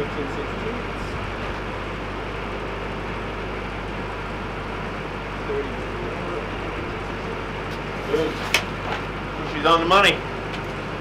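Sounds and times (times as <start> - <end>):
welding machine engine drone: 0.0 - 11.0.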